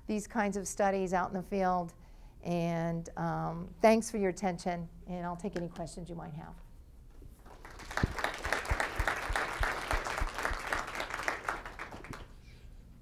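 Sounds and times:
single claps: 7.5 - 12.3
audience applauding: 7.5 - 12.4.

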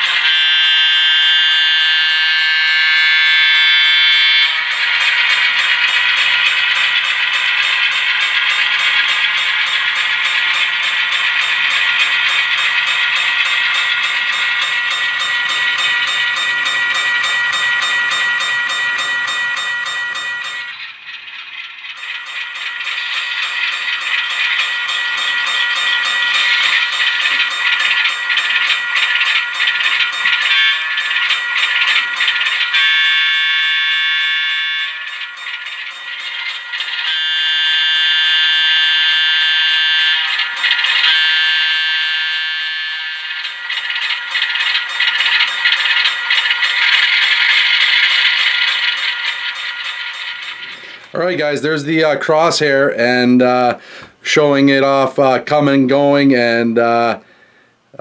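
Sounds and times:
train horn blasts: 0.0 - 4.6, 30.5 - 30.9, 32.8 - 35.0, 37.0 - 40.2, 41.0 - 43.4
crossing bell ringing: 0.0 - 53.9.

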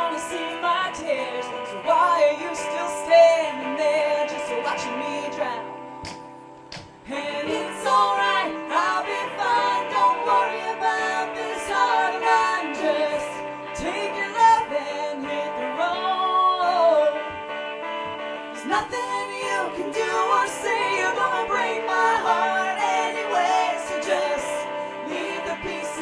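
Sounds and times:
woman singing: 0.0 - 5.9, 7.0 - 17.4, 18.5 - 26.0
instrumental accompaniment: 0.0 - 26.0.

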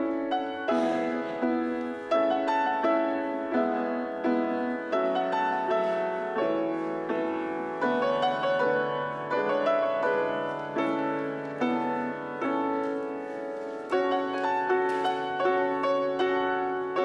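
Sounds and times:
grand piano playing: 0.0 - 17.0.

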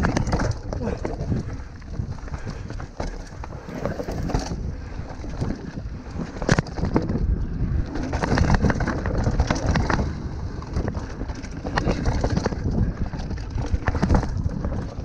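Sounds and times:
bike knocks and rattles: 0.0 - 15.0
bike tyres rolling over dirt: 0.0 - 15.0
wind noise on microphone: 0.0 - 15.0.

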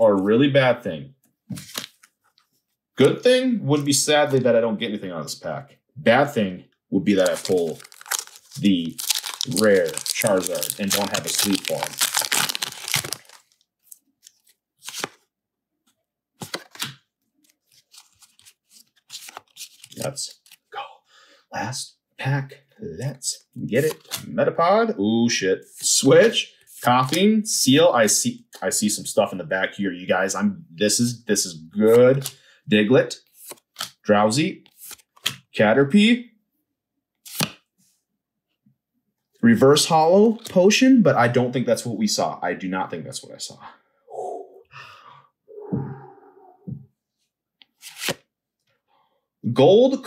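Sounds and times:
cards and foil wrapper rustling: 7.1 - 15.2, 16.4 - 20.7, 47.8 - 48.2.

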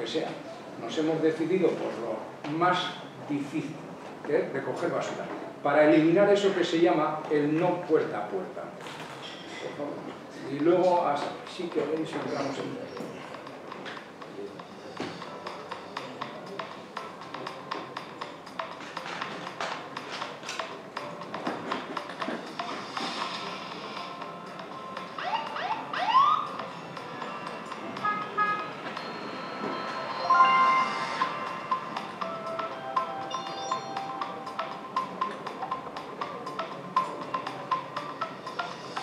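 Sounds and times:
background music over loudspeakers: 13.3 - 39.0
chime-like steady tones: 28.6 - 35.2
rising sweeps: 29.4 - 32.2.

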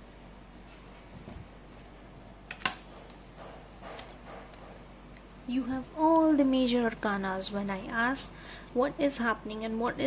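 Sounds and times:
cards rustling and tapping: 2.5 - 4.7.

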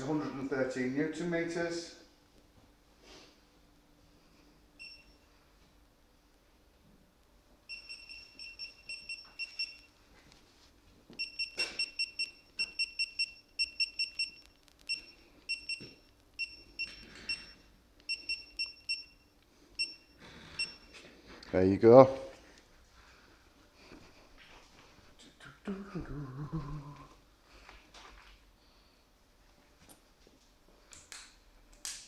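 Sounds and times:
rapid high beeps: 7.7 - 9.9, 11.2 - 19.2, 19.8 - 20.9.

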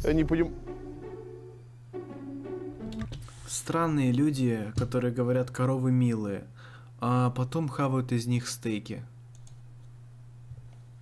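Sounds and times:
steady low hum: 0.0 - 11.0
faint clicks: 9.3 - 9.6.

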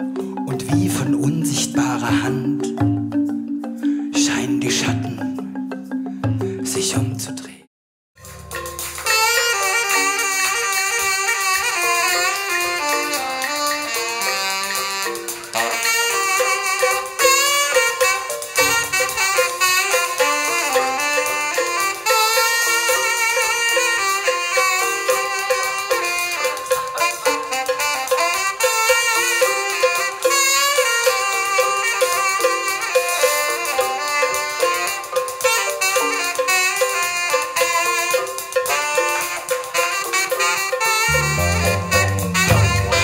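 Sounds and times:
saxophone melody: 0.0 - 0.5, 8.2 - 43.0
hand drums: 0.0 - 7.4, 8.2 - 43.0.

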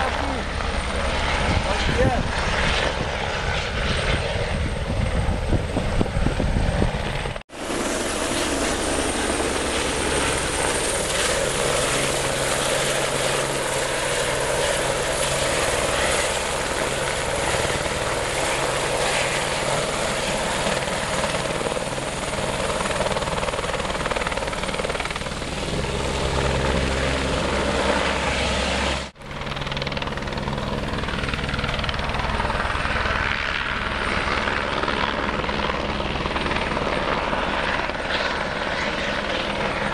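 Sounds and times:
helicopter rotor blades beating: 0.0 - 39.9.

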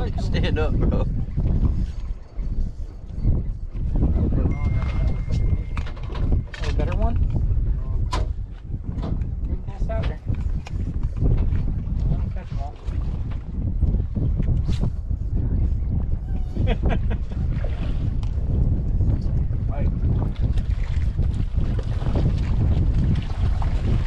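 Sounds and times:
wind rumbling on microphone: 0.0 - 24.0.

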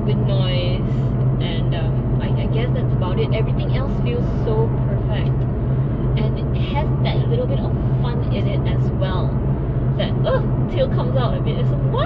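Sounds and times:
car engine drone from cabin: 0.0 - 12.0
road noise: 0.0 - 12.0.

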